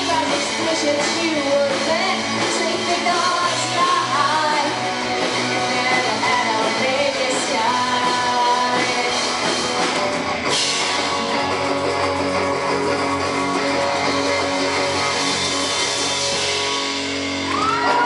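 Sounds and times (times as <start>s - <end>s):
rock band playing: 0.0s - 18.0s
audience whooping and cheering: 15.1s - 18.0s.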